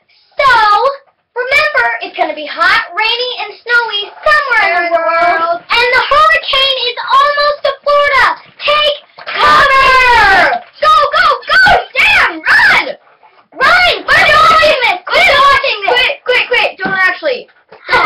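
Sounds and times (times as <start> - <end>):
girls singing and exclaiming: 0.4 - 18.0.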